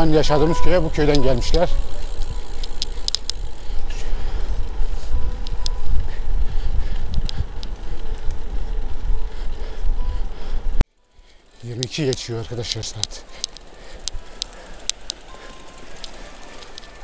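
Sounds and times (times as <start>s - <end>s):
wind buffeting microphone: 0.0s - 10.8s
bicycle tyre noise on pavement: 0.0s - 17.0s
sharp clicks: 1.1s - 3.8s, 7.0s - 8.4s, 11.3s - 17.0s.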